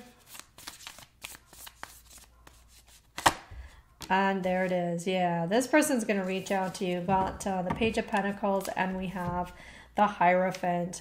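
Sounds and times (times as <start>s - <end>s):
cards being shuffled: 0.1s - 4.7s, 7.9s - 9.5s
card snap: 3.1s - 3.5s.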